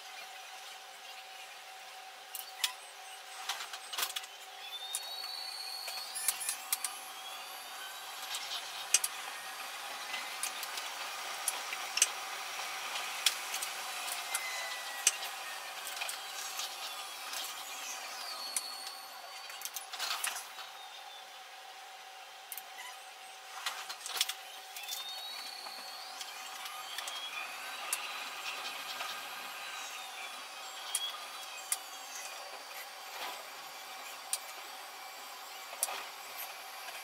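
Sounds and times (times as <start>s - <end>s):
high whine: 0.0s - 37.0s
train running on track: 1.4s - 22.5s, 23.4s - 37.0s
sharp clicks and squeals: 2.3s - 21.2s, 22.5s - 34.7s.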